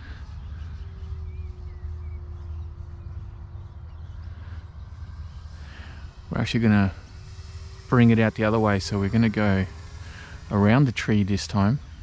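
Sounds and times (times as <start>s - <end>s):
low rumble: 0.0s - 11.5s
model plane motor humming: 0.0s - 12.0s.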